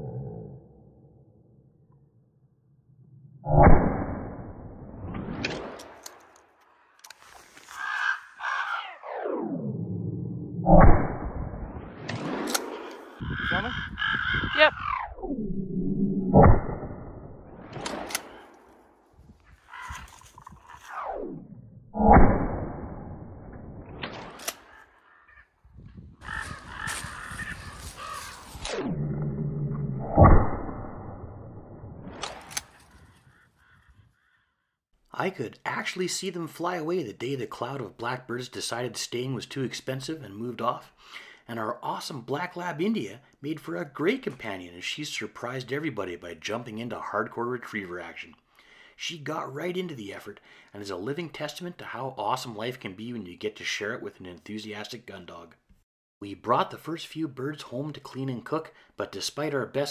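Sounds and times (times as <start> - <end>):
crows cawing: 7.5 - 9.0, 12.9 - 15.0, 19.6 - 20.8, 24.6 - 25.6, 26.2 - 28.6, 33.0 - 34.8.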